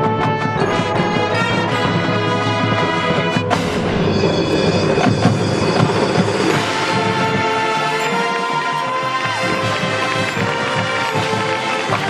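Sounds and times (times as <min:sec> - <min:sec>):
marching band playing: 0:00.0 - 0:12.0
cymbal crash: 0:03.4 - 0:08.6.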